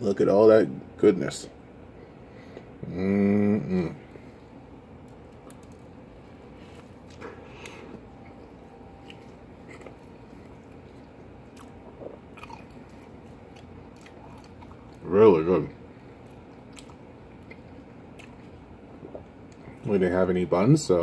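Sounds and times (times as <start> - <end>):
man chewing food: 4.0 - 15.0, 15.7 - 19.8.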